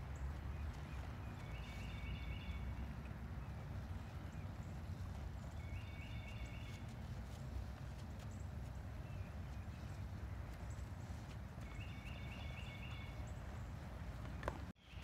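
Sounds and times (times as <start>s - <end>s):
hooves on soft dirt: 0.0s - 15.0s.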